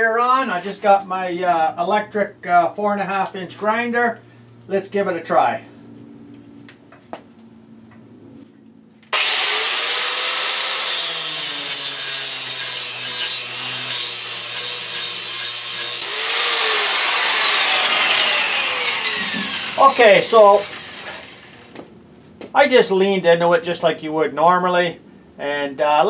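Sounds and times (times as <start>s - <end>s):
angle grinder grinding metal: 9.1s - 21.8s.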